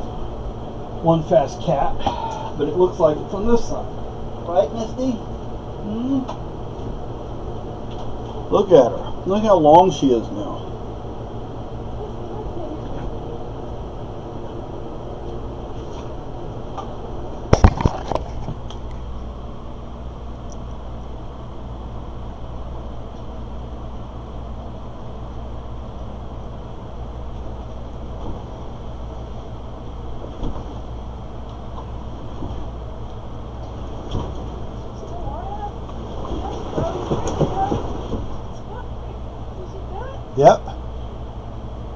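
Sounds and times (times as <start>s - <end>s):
exercise wheel rumbling: 0.0s - 19.8s, 20.8s - 41.9s.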